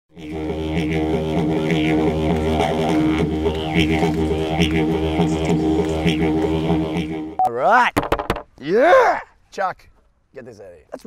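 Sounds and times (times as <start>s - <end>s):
didgeridoo drone: 0.1s - 7.4s.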